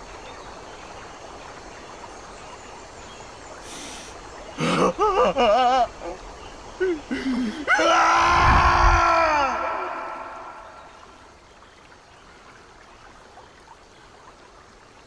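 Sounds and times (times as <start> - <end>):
man sobbing: 4.6 - 6.2, 6.8 - 8.1
man screaming in anguish: 7.6 - 10.8.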